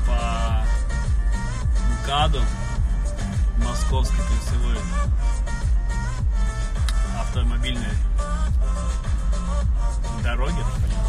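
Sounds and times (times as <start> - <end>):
electronic dance music from car radio: 0.0 - 11.0.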